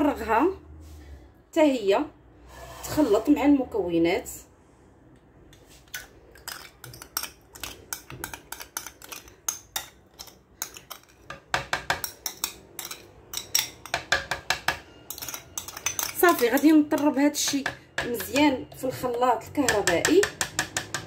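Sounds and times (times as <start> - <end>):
metal spoon clinking on rims: 6.5 - 11.4, 12.0 - 18.8.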